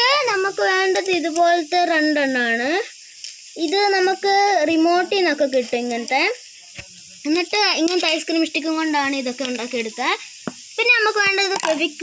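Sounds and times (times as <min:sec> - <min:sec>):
steady background hiss: 0:00.0 - 0:12.0
person speaking: 0:03.6 - 0:12.0.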